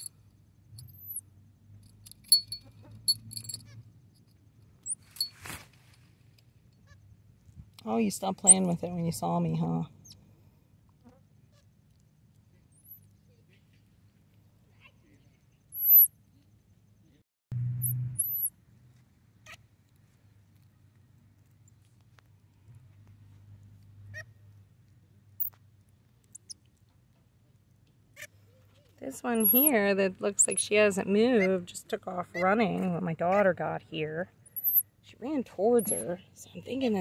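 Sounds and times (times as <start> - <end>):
faint high falling chirp: 15.6 - 16.1
baby monkeys chirping: 29.3 - 30.6, 35.7 - 36.2.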